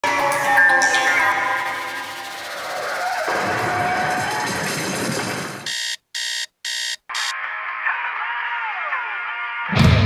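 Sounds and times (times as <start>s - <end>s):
alarm clock electronic beeps: 5.7s - 7.4s.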